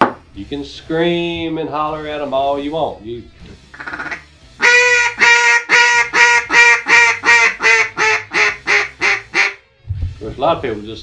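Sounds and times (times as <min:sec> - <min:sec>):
duck call quacks: 0:03.7 - 0:09.6.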